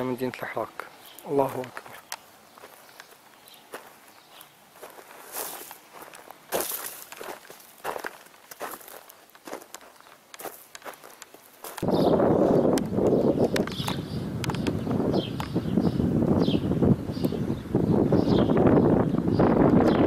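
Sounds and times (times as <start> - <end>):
footsteps crunching on rubble: 0.7 - 11.9.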